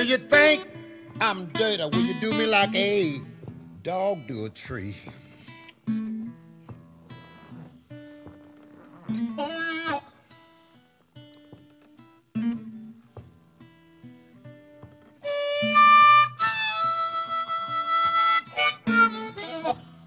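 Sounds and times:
picked acoustic guitar notes: 0.0s - 20.0s
harmonica playing: 9.1s - 10.3s, 15.2s - 20.0s.

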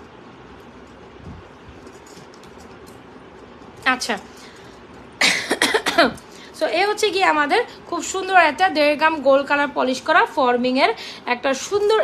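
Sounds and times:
woman coughing: 5.2s - 6.2s.

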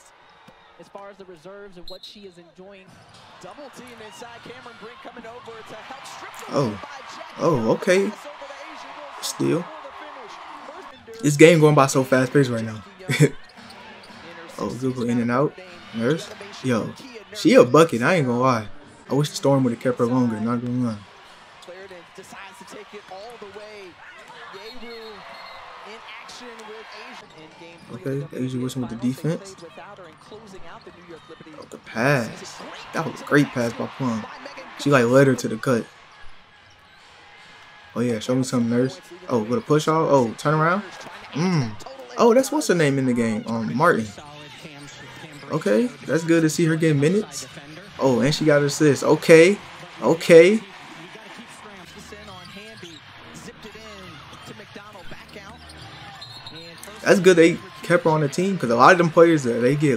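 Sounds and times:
basketball play on court: 0.0s - 59.9s
sports commentator talking: 0.8s - 35.9s, 37.9s - 59.9s
arena crowd murmur: 2.8s - 59.9s.

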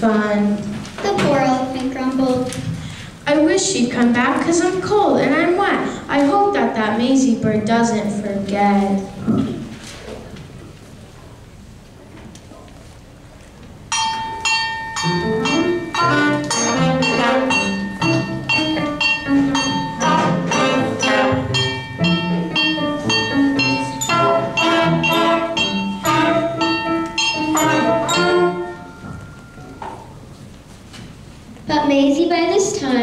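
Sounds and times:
brass and saxophone band playing: 15.0s - 29.1s.

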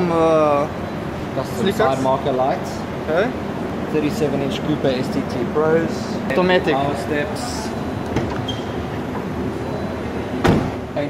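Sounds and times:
low background noise: 0.0s - 11.0s
car door swinging open: 10.4s - 10.8s.

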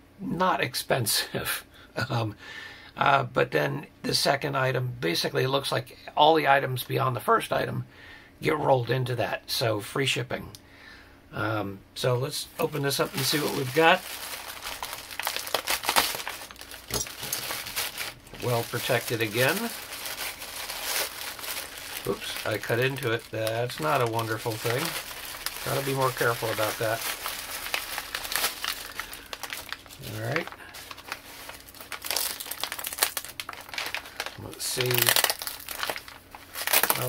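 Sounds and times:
mailer bag crinkling and rustling: 12.6s - 37.0s.

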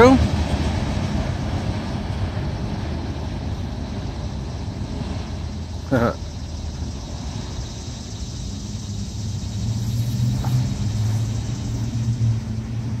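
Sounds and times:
freight train rolling on track: 0.0s - 13.0s.

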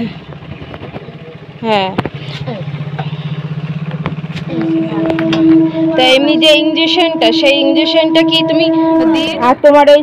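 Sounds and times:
small engine idling: 0.0s - 10.0s.

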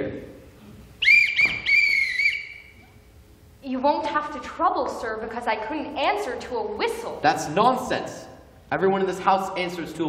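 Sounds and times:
whistle signal call: 1.0s - 2.9s.

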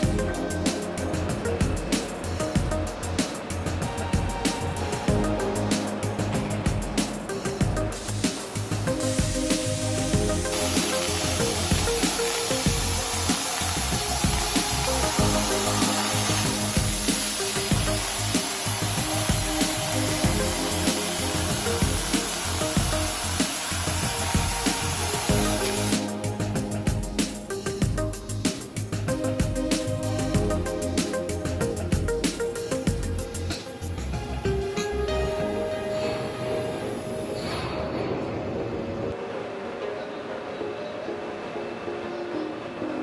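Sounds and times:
background music: 0.0s - 43.0s
plasma torch cutting steel: 7.0s - 26.4s.

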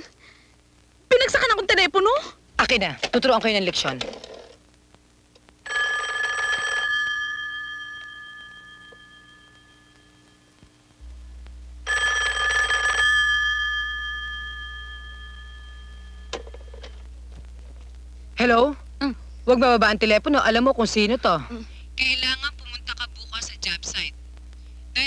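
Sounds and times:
telephone bell ringing: 5.6s - 10.6s, 11.9s - 17.0s.

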